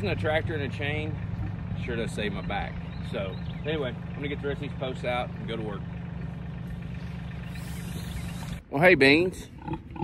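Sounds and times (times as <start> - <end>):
tractor engine idling: 0.0 - 9.5.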